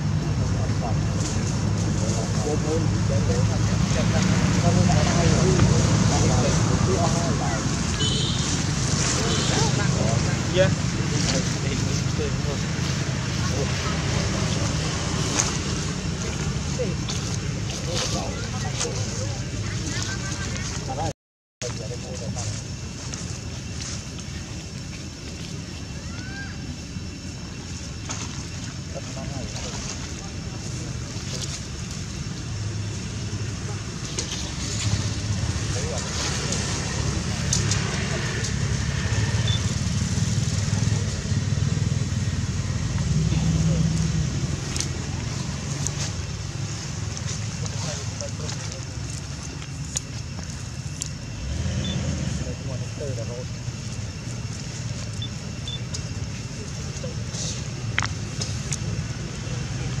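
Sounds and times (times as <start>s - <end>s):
faint indistinct voices: 0.1s - 60.0s.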